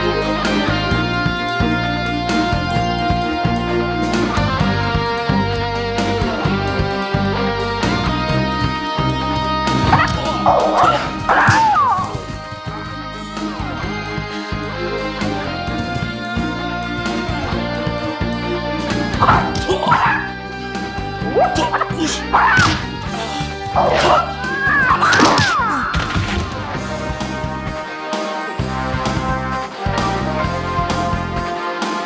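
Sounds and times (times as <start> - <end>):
film score music: 0.0 - 32.0
high-pitched fighting yells: 9.8 - 12.2, 19.2 - 20.3, 21.2 - 26.0
high-pitched yelping battle cries: 9.8 - 12.3, 19.2 - 20.4, 21.2 - 26.1.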